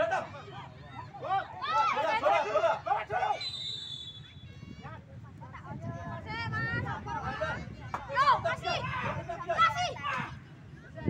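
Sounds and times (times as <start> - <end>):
high whistle tone: 3.4 - 4.6.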